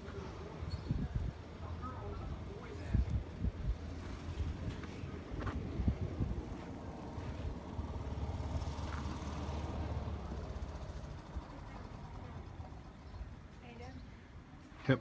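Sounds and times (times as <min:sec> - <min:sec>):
golf cart engine passing: 0:03.7 - 0:13.4.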